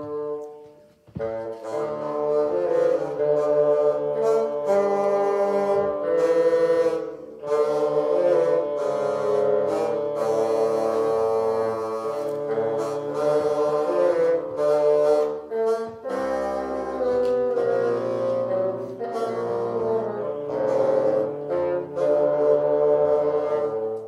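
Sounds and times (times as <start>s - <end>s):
bassoon ensemble playing: 0.0s - 24.0s.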